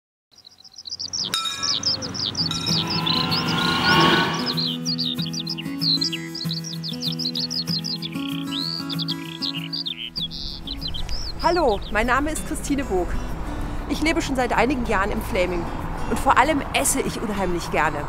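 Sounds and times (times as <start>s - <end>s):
birds chirping: 0.3s - 12.5s
low sustained music chords: 1.3s - 5.4s
whoosh: 2.3s - 4.8s.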